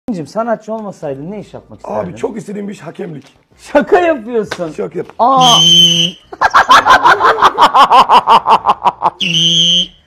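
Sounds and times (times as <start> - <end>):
man imitating whistle: 5.4 - 6.2, 9.2 - 10.0.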